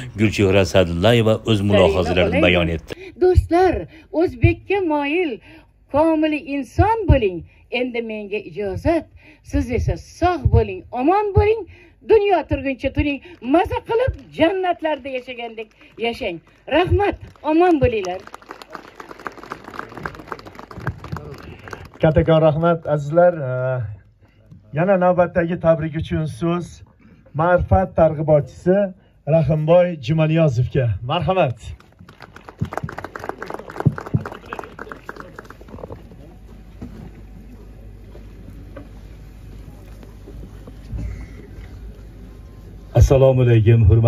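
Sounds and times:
low outdoor rumble: 0:00.0 - 0:24.1
scattered applause: 0:13.3 - 0:23.7, 0:31.8 - 0:36.4.

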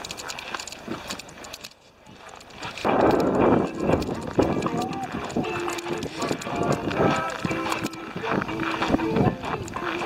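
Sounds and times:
footsteps crunching on snow: 0:00.0 - 0:10.0
people's voices: 0:00.3 - 0:10.0.

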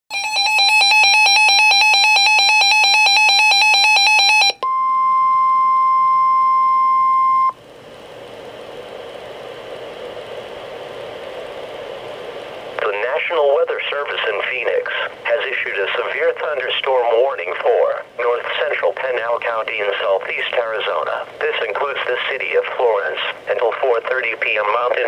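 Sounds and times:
broadcast background hiss: 0:07.6 - 0:25.0.

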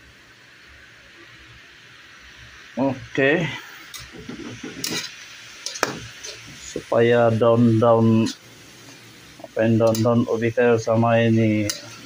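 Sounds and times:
gas stove burner hiss: 0:00.0 - 0:12.0
leaves frying in oil: 0:00.0 - 0:12.0.

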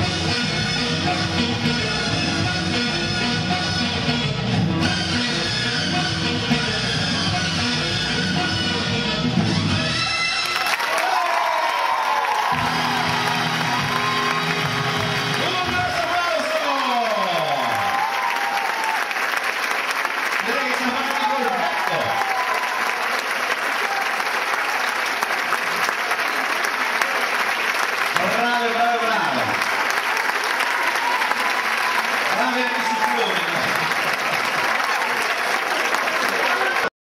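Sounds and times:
audience applauding: 0:10.2 - 0:36.9.

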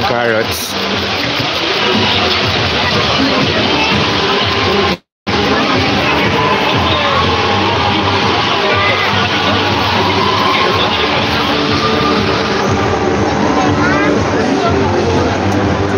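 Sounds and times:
crowd chatter: 0:00.0 - 0:15.9
music over pa system: 0:00.0 - 0:15.9.

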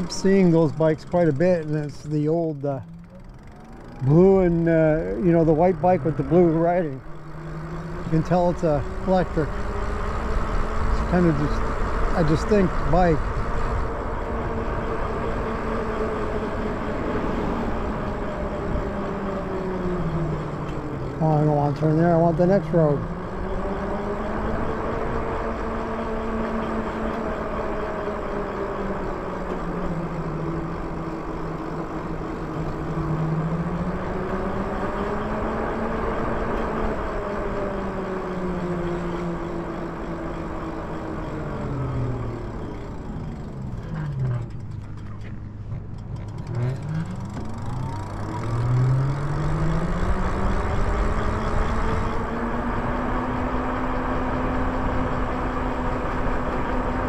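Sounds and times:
electric motor whining: 0:00.0 - 0:45.2, 0:45.9 - 0:57.0
road and wind noise: 0:00.0 - 0:57.0.

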